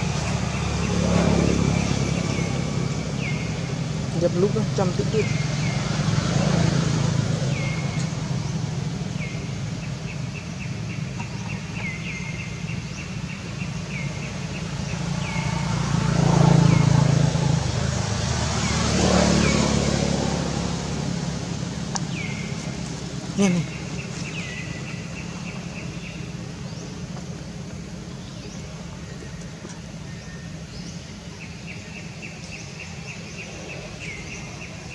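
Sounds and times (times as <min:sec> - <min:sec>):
vehicle engine humming: 0:00.0 - 0:34.9.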